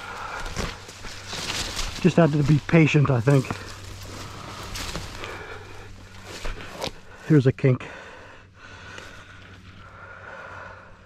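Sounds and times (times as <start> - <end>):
footsteps rustling through grass: 0.0 - 7.2.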